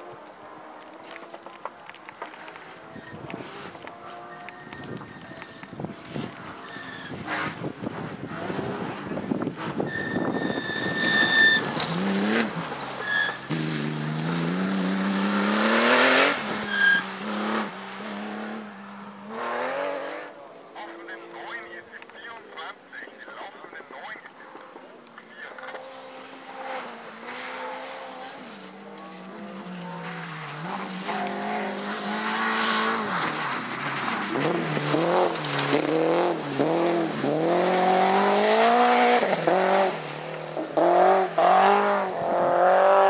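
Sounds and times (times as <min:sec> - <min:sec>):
distant car engine: 0:00.0 - 0:43.0
gravel and tyre noise: 0:00.0 - 0:43.0
short high-pitched squeals: 0:09.9 - 0:11.8, 0:13.0 - 0:13.5.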